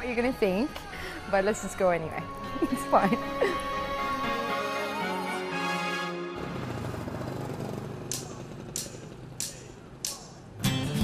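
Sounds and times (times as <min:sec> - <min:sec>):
motorcycle engine rumble: 0:06.4 - 0:10.6.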